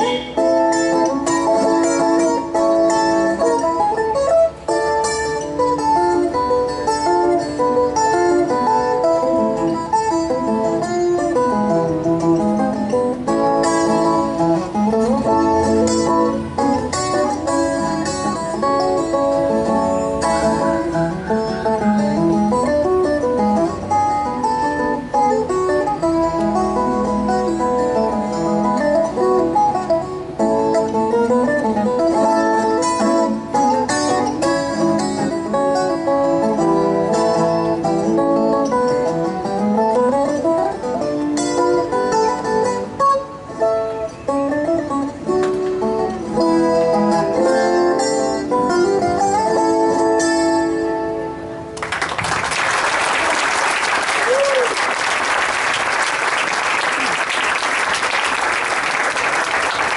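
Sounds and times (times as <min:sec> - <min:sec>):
plucked string instrument melody: 0:00.0 - 0:51.9
audience applause: 0:51.8 - 0:59.9.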